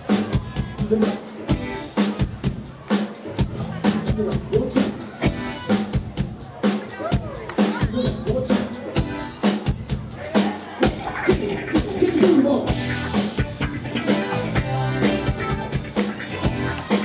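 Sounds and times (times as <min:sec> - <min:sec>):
bass guitar: 0:00.0 - 0:06.4, 0:07.0 - 0:17.0
drum kit beat: 0:00.0 - 0:17.0.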